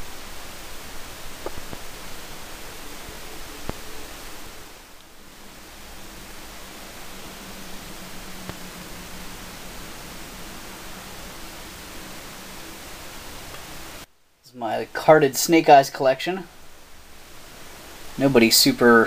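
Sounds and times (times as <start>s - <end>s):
faint low hum: 0.0s - 19.0s
microphone hiss: 0.0s - 19.0s.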